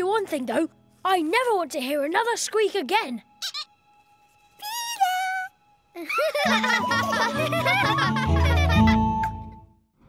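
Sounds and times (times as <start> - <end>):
squeaky toy squeak: 3.4 - 3.8.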